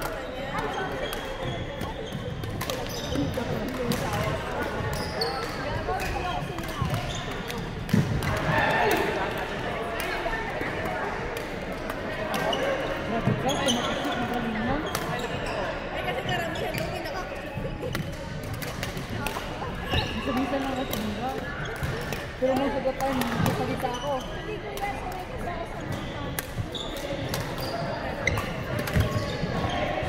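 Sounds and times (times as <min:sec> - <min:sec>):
chatter of voices: 0:00.0 - 0:30.0
racket hitting shuttlecock: 0:01.1 - 0:03.0.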